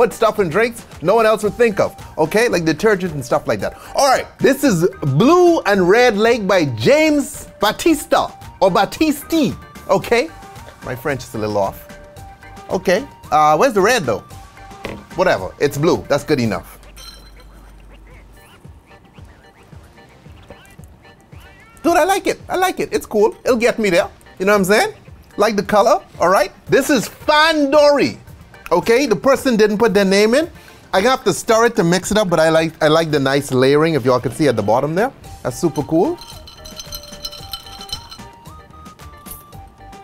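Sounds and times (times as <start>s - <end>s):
background music: 0.0s - 40.0s
ice clinking in a glass: 17.0s - 17.5s, 35.7s - 38.4s.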